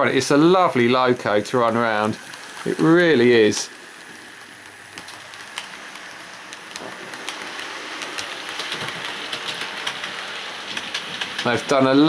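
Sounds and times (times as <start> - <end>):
model train whirring: 0.0 - 12.0
sharp track clicks: 4.0 - 11.8.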